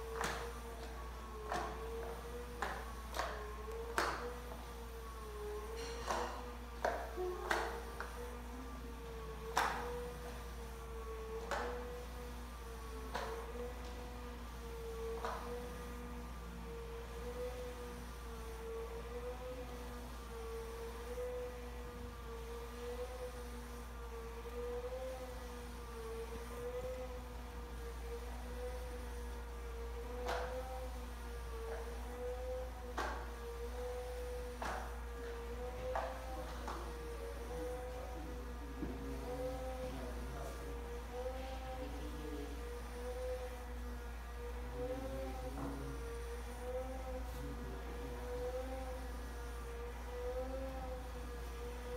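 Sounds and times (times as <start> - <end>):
blind motor humming: 0.0 - 51.9.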